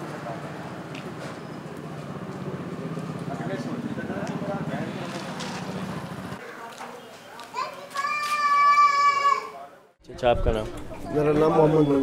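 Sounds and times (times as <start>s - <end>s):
indistinct voices in a street: 0.0s - 12.0s
children's voices: 7.4s - 9.6s.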